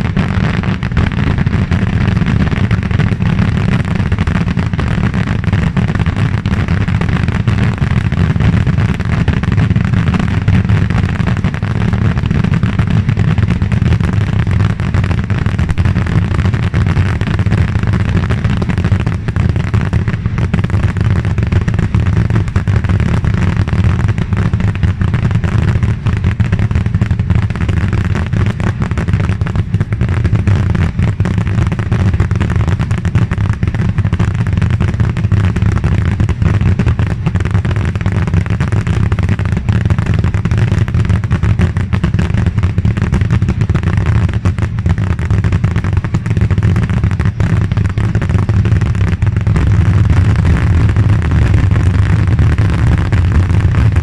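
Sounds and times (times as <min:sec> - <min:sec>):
skyrockets launching and bursting: 0:00.0 - 0:54.0.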